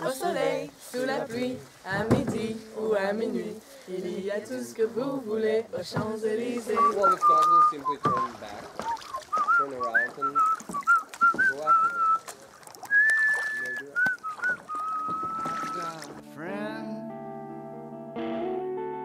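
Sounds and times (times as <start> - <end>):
man whistling a tune: 6.7 - 12.3, 12.9 - 16.0
guitar and keyboard music: 15.4 - 19.0.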